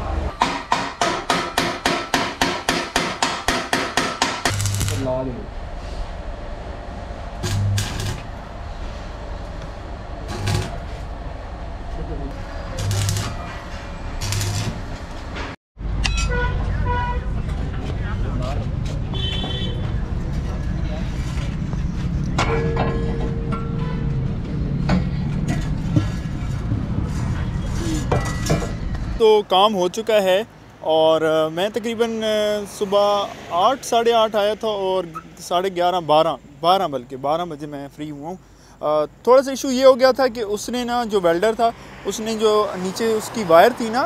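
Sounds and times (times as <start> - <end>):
hammer striking metal: 0.3 - 5.1, 15.9 - 16.4, 22.4 - 24.1
electric arc welder humming: 4.1 - 5.4, 7.2 - 8.6, 10.2 - 11.1, 12.6 - 15.1
vehicle rumble: 4.4 - 36.6
car horn toots: 16.2 - 17.3, 19.2 - 19.8.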